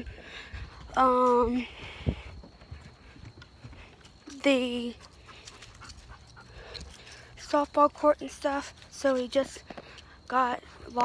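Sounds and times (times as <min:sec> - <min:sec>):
faint panting breaths: 0:00.0 - 0:07.6, 0:08.6 - 0:10.9.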